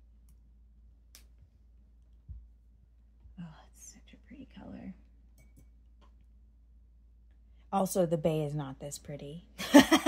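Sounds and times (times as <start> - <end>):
woman whispering: 3.4 - 5.0.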